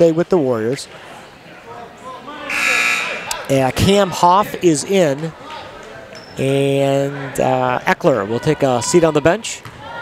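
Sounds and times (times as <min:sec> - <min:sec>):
scoreboard buzzer: 0:02.5 - 0:03.3.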